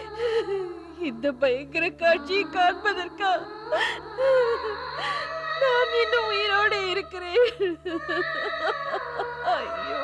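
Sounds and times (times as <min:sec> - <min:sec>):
woman sobbing and wailing: 0:00.0 - 0:10.0.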